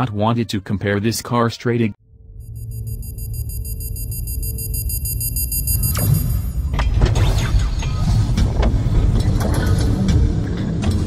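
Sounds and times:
high-pitched ringing tone: 0:02.1 - 0:06.8.

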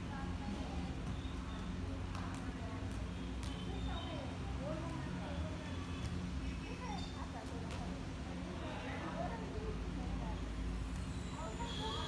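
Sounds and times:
hands slapping volleyball: 0:02.0 - 0:03.7.

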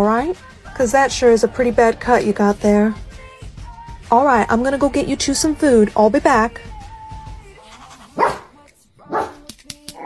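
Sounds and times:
quiet background music: 0:00.0 - 0:10.0
dog barking: 0:07.7 - 0:09.4.

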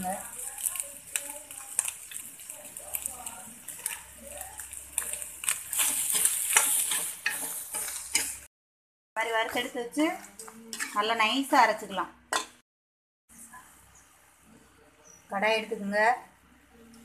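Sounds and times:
light sizzle: 0:00.0 - 0:08.5
steel ladle scraping pan: 0:04.7 - 0:08.5, 0:10.7 - 0:11.2.

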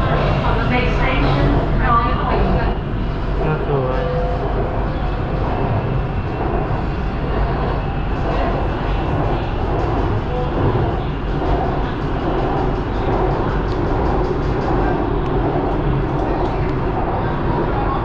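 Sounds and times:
train wheels rumbling: 0:00.0 - 0:18.0.

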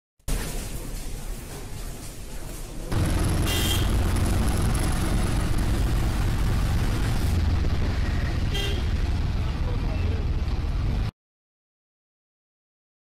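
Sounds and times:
road traffic noise: 0:00.3 - 0:11.1
auto-rickshaw engine running: 0:02.9 - 0:11.1
vehicle horn honking: 0:03.3 - 0:04.1, 0:08.5 - 0:09.0.

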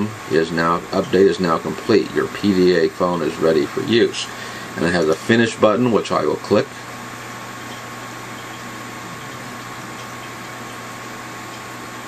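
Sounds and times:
faint high whine: 0:00.0 - 0:12.0
low hum: 0:06.7 - 0:12.0.

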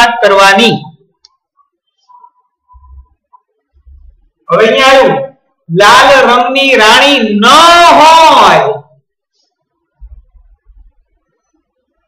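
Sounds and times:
man speaking: 0:00.0 - 0:01.0, 0:04.4 - 0:08.9.

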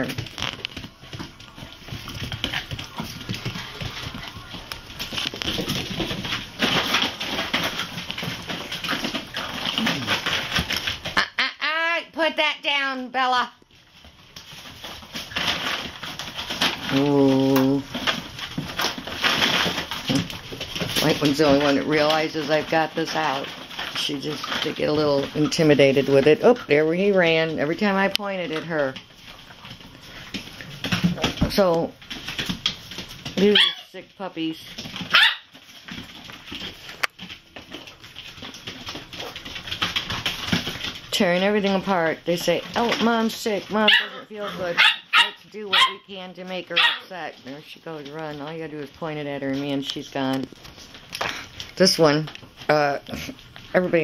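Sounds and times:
plastic bag rustling: 0:00.0 - 0:11.2, 0:13.6 - 0:54.0
puppies scuffling: 0:00.0 - 0:54.0
puppy barking: 0:33.5 - 0:33.9, 0:35.1 - 0:35.5, 0:43.8 - 0:46.1, 0:46.7 - 0:47.1.

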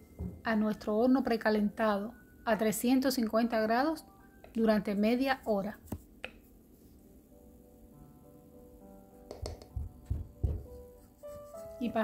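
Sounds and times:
quiet background music: 0:00.0 - 0:12.0
low knocks: 0:09.3 - 0:10.8.

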